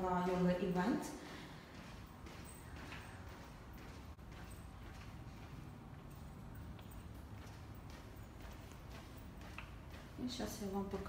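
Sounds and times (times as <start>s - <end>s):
footsteps on tiled floor: 0.0s - 11.0s.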